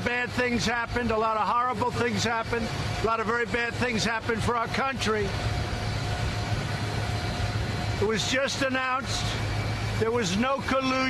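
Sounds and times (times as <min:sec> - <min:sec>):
high whine: 0:00.0 - 0:11.0
low engine drone: 0:00.0 - 0:11.0.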